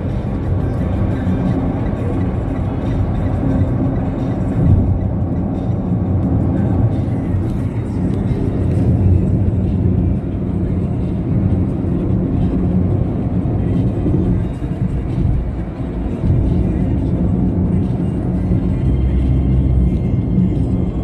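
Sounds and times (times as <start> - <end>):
music playing: 0.0 - 21.0
vehicle rumble from inside: 0.0 - 21.0.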